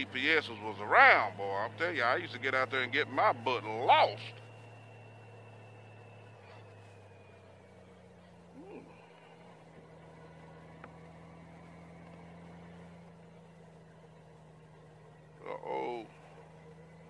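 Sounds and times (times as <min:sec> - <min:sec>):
motorcycle engine hum: 0:00.0 - 0:17.0.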